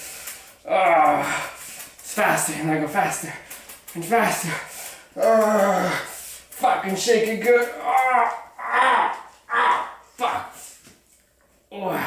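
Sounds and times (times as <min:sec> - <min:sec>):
man crying out: 0:05.2 - 0:06.1, 0:07.7 - 0:10.6.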